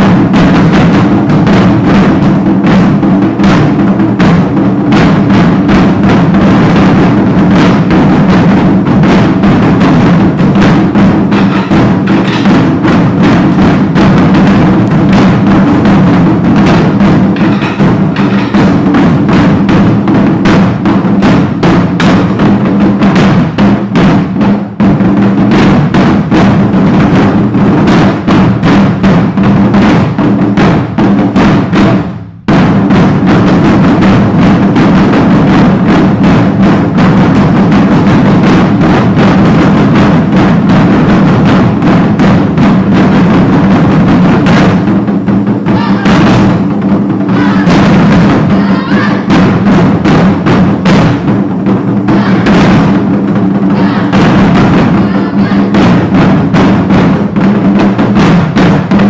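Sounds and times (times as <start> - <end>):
barrel drums played with sticks: 0.0 - 59.0.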